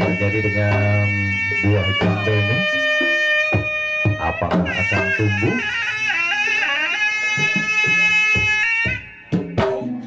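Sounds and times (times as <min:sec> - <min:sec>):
reedy wind instrument: 0:00.0 - 0:10.0.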